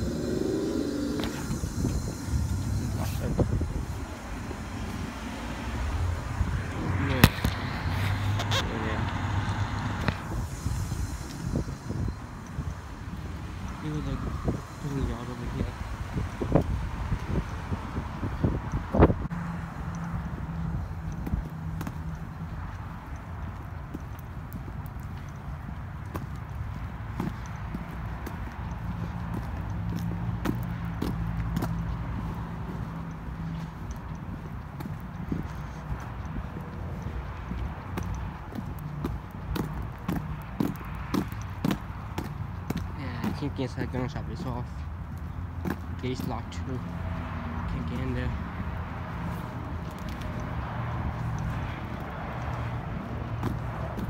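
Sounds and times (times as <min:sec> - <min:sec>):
footsteps on gritty pavement: 0:00.0 - 0:54.0
wind rumble on microphone: 0:00.0 - 0:54.0.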